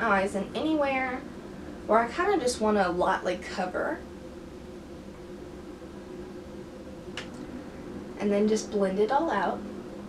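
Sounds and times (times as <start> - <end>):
low room hum and hiss: 0.0 - 10.0.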